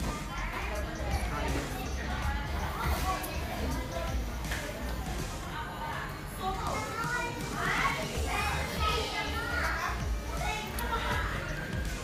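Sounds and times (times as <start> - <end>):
children calling and chattering: 0.0 - 12.0
faint music: 0.0 - 12.0.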